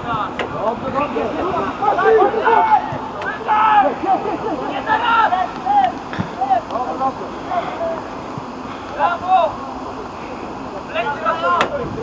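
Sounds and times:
players shouting: 0.0s - 12.0s.

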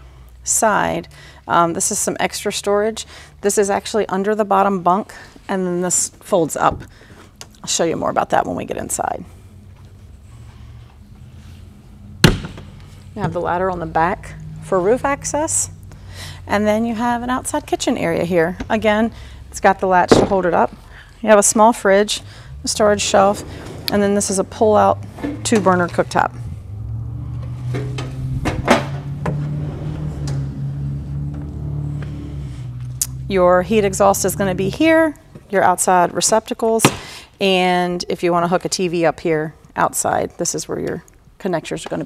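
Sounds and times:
steady low hum: 0.0s - 35.7s
compartment door slamming shut: 12.2s - 12.7s.

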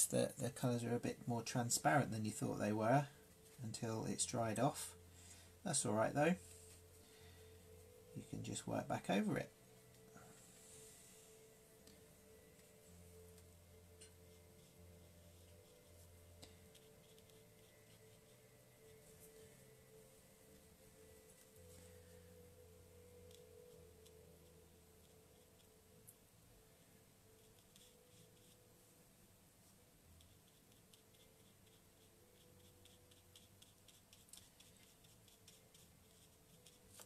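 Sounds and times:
faint steady hum: 0.0s - 37.0s.

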